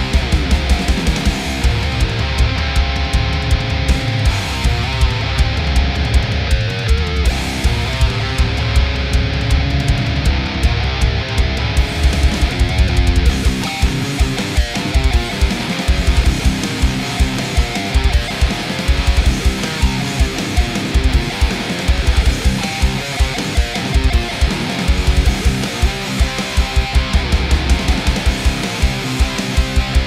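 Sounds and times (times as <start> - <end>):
deep drum hits: 0.0 - 14.4
distorted electric guitar riffs: 0.0 - 30.0.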